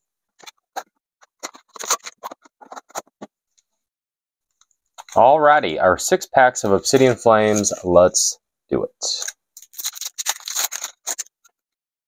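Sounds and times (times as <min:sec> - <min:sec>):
packaging crinkling: 0:01.2 - 0:03.2, 0:09.2 - 0:11.5.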